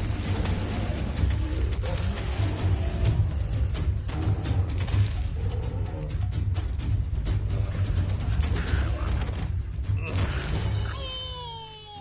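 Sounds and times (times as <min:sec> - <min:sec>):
dramatic film score with drumming: 0:00.0 - 0:11.8
dinosaur high whining cry: 0:10.6 - 0:12.0.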